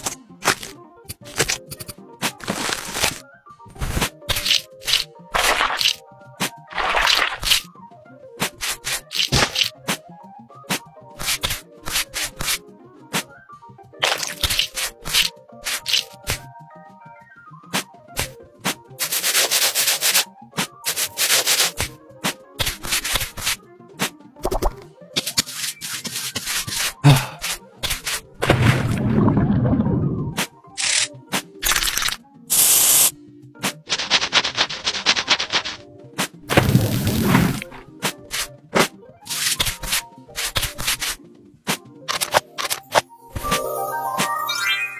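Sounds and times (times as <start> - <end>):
fingernails scratching skin: 8.4 - 9.7, 14.0 - 16.4, 19.0 - 20.2, 20.8 - 21.9, 22.6 - 23.6, 25.2 - 28.2, 33.6 - 35.8, 37.5 - 41.2
cloth rubbing eyeglasses: 19.0 - 20.2, 20.8 - 21.9, 25.2 - 28.2.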